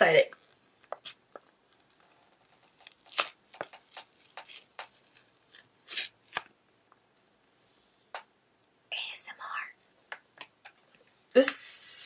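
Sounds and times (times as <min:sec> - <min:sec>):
sachet crinkling and ripping: 0:00.4 - 0:06.5.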